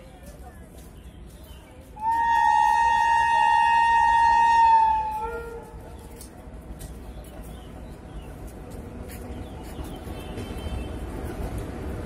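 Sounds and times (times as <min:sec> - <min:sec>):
train horn blast: 0:02.0 - 0:05.8.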